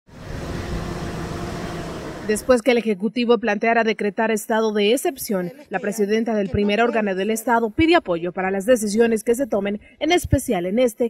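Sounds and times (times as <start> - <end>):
road noise: 0.1 - 2.7
vehicle engine rumble: 0.1 - 2.7.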